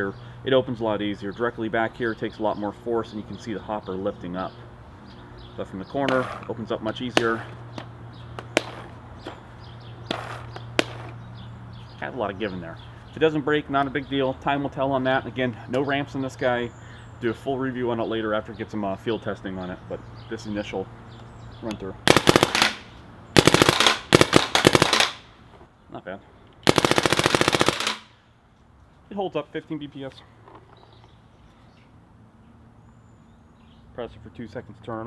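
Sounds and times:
paintball marker firing bursts: 0:08.4 - 0:09.3, 0:10.0 - 0:11.2, 0:22.0 - 0:25.3, 0:26.6 - 0:28.1.

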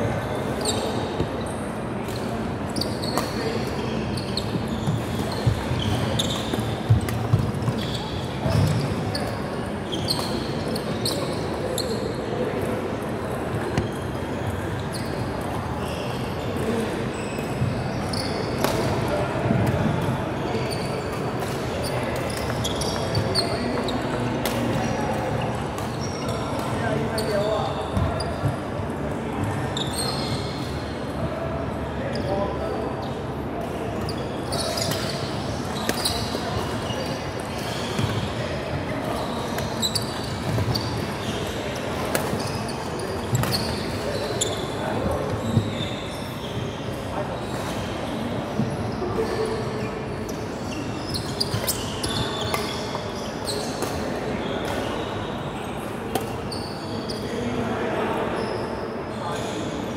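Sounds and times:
sneakers squeaking on floor: 0:00.0 - 0:59.9.

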